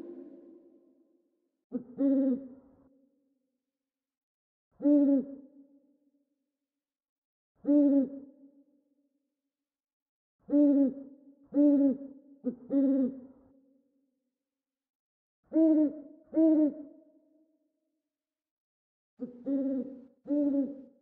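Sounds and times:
owl hooting: 10.5 - 12.1, 15.6 - 16.8, 19.4 - 20.8.

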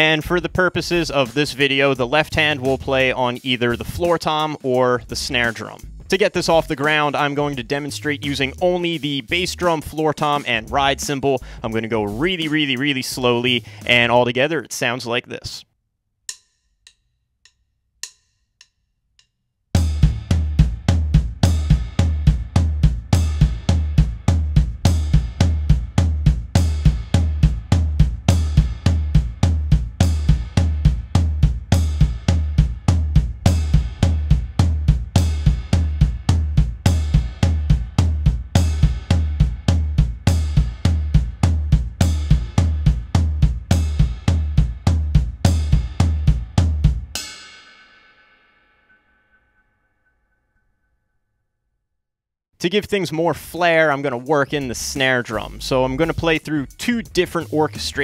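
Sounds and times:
bass drum kicks: 5.2 - 6.7, 19.8 - 47.2
floor tom hits: 19.8 - 47.2.

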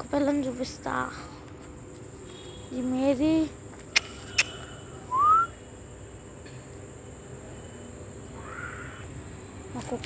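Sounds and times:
person whistling rising note: 5.1 - 5.6.

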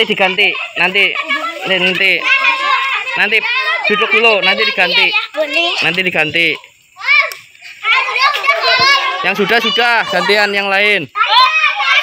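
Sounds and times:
children talking and calling out: 0.0 - 12.0
child's high call: 7.0 - 10.4, 11.1 - 12.0.

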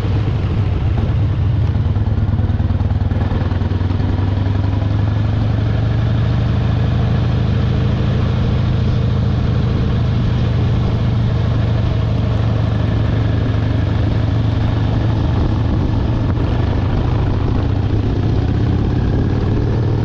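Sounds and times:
motorcycle engine running steadily: 0.0 - 20.0.

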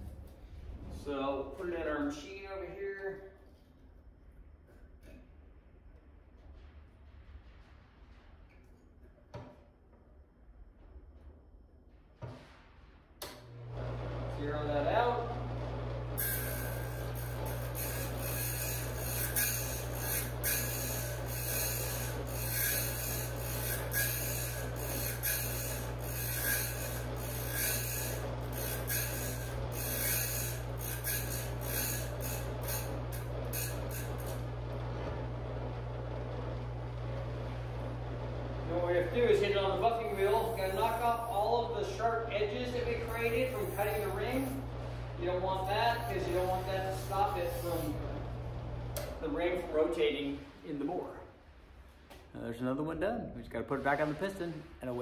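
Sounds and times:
electric motor humming: 13.5 - 49.9
abrasive wheel grinding metal: 13.5 - 50.9.

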